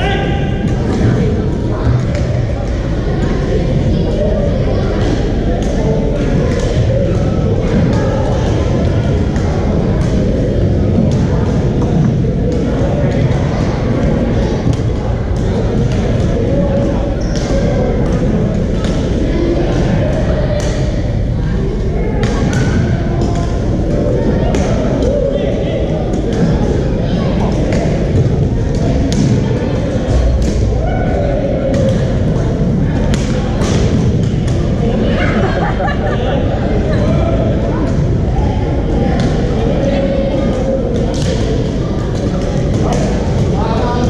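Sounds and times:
chatter of many players: 0.0 - 44.0.

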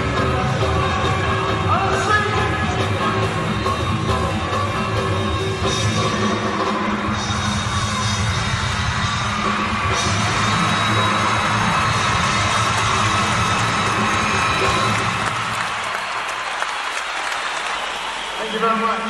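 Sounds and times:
live rock band playing: 0.0 - 15.6
crowd cheering and yelling: 0.0 - 19.0.

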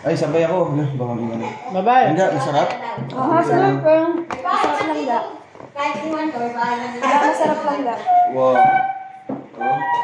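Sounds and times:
people talking: 0.0 - 8.9.

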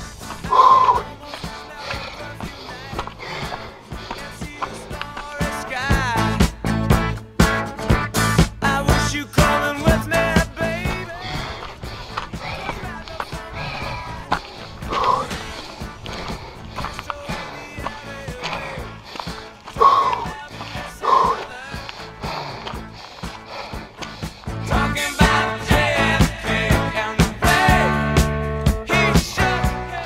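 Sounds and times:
music with bass and beat: 0.0 - 30.0.

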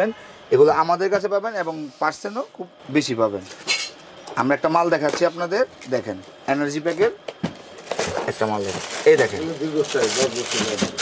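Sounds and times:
man talking: 8.2 - 11.0.

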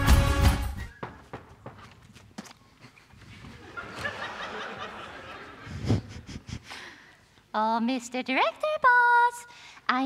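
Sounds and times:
footsteps on a stage: 0.2 - 4.3.

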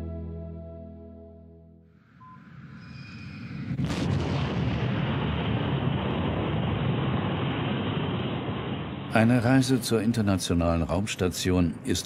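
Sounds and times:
rocket engines roaring: 2.4 - 12.0.

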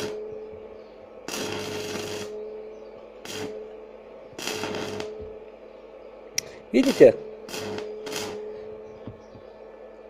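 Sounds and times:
steady welding hum: 0.0 - 10.0
welding arc crackling and hissing: 1.3 - 2.3, 3.2 - 3.5, 4.4 - 5.1, 6.4 - 8.4.

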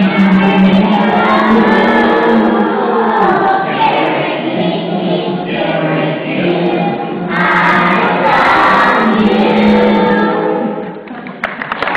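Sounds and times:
children's choir singing: 0.0 - 11.1.

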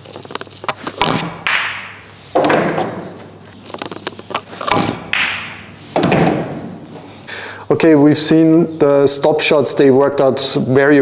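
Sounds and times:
pool balls clicking: 0.0 - 6.8
ball dropping into pocket: 0.3 - 3.0, 3.7 - 6.4.

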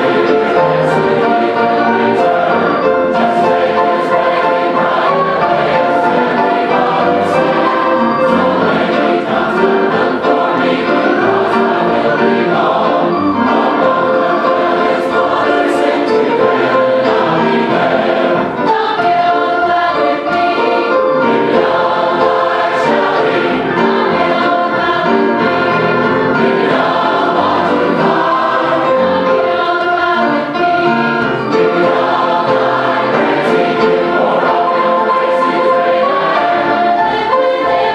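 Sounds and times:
choir singing gospel: 0.0 - 37.9
piano accompaniment: 0.0 - 37.9.

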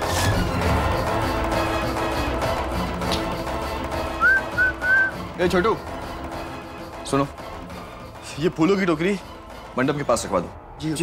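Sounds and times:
soft background music: 0.0 - 11.0
whistled notes: 4.2 - 5.2.

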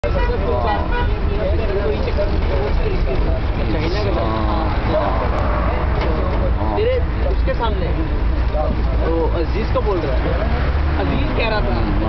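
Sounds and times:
people talking: 0.0 - 12.0
street traffic: 0.0 - 12.0
vehicle rumble: 0.0 - 12.0.

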